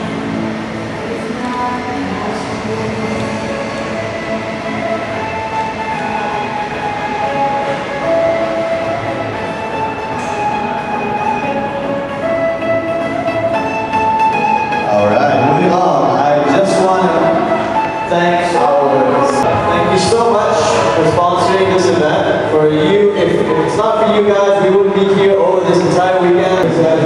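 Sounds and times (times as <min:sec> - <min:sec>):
music with long held notes: 0:00.0 - 0:27.0
chatter of voices: 0:14.8 - 0:27.0.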